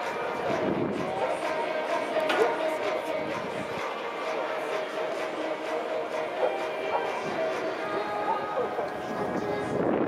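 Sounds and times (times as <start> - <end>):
faint music with held notes: 0.0 - 10.0
spectators chattering: 0.0 - 10.0.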